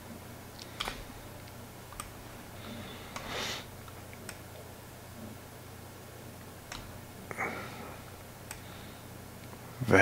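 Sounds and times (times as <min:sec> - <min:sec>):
steady low hum: 0:00.0 - 0:10.0
man speaking: 0:09.8 - 0:10.0.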